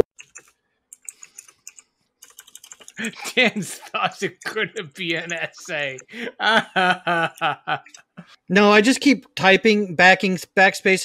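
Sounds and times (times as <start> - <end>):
keyboard typing: 0.0 - 3.4, 4.8 - 6.1.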